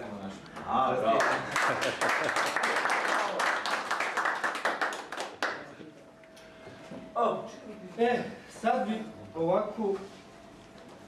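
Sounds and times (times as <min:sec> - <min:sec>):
people clapping: 0:01.0 - 0:05.9.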